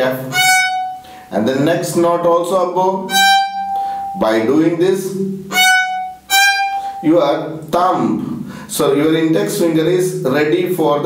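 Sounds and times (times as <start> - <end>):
violin short bowed notes: 0.2 - 1.2, 3.0 - 4.7, 5.5 - 7.4.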